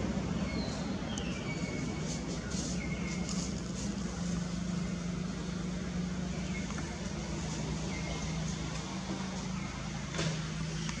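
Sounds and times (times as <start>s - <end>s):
low engine-like hum: 0.0s - 11.0s
noisy outdoor background: 0.0s - 11.0s.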